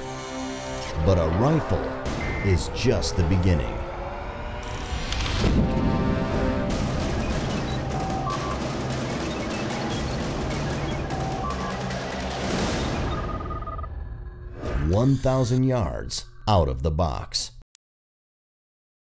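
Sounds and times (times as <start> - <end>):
short electronic beeps: 2.2 - 2.5
rapid digital clicking: 6.8 - 13.6.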